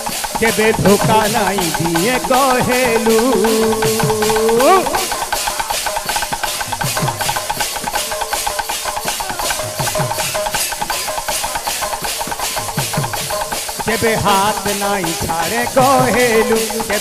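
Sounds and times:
brass hand cymbals clashing: 0.0s - 17.0s.

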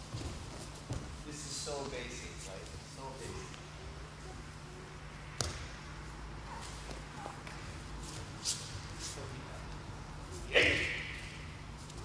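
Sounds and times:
shuffling on mats: 0.0s - 3.6s, 5.4s - 12.0s.

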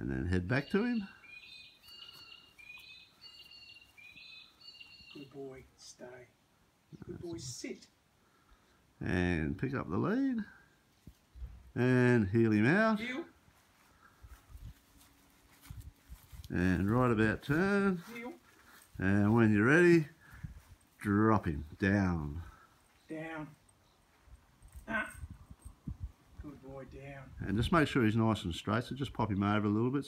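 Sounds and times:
faint bird chirping: 0.4s - 8.8s, 22.4s - 24.7s
footsteps on grass: 1.5s - 5.1s, 13.3s - 23.0s.

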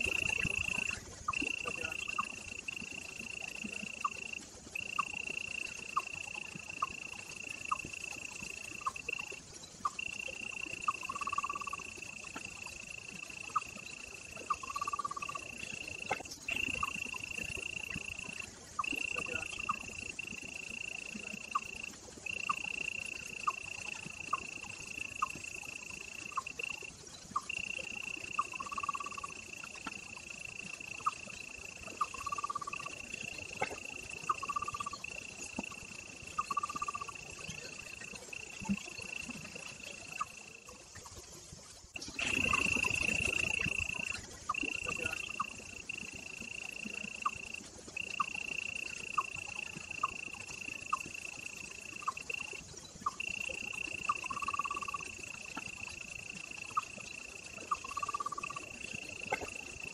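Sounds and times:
frogs clicking calls: 0.0s - 59.9s
insects trilling: 0.0s - 59.9s.

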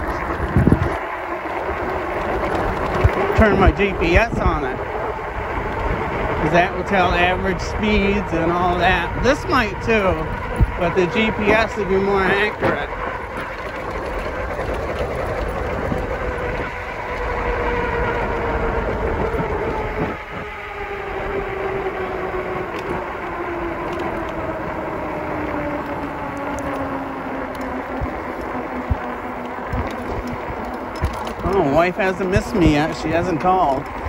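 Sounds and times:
electric motor whine: 0.0s - 34.0s
wind and tyres on road: 0.0s - 34.0s.

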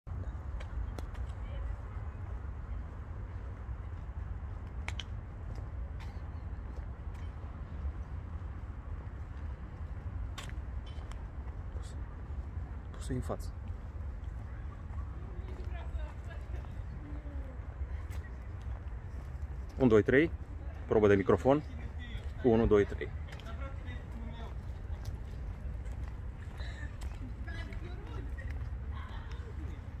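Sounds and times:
faint voices: 11.7s - 30.0s.

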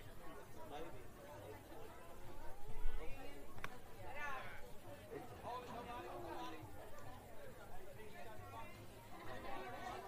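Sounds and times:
faint chatter of spectators: 0.0s - 10.0s.

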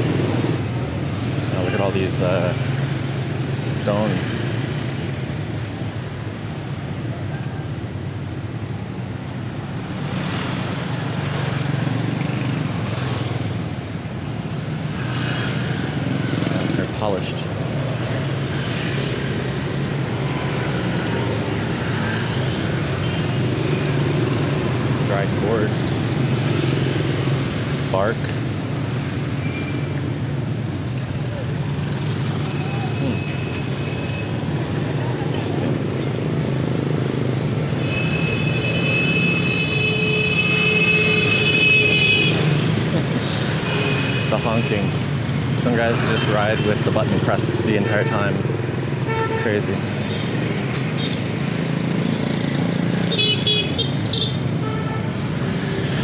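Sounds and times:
motorbike and scooter traffic: 0.0s - 56.0s.

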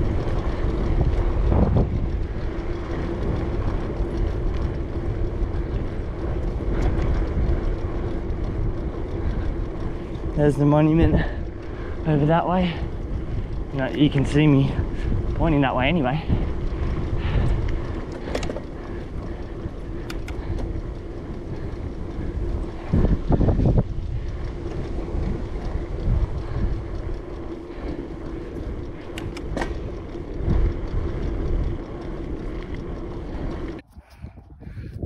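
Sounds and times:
low rumble: 0.0s - 35.0s
steady hum: 0.0s - 35.0s
wind over camera microphone: 0.0s - 35.0s.

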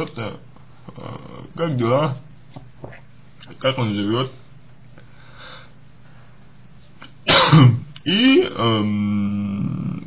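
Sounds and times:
man clearing his throat: 7.3s - 7.9s.

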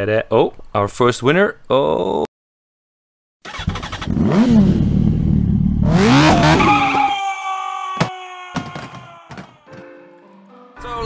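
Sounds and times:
motorcycle engine revving: 3.5s - 6.8s.

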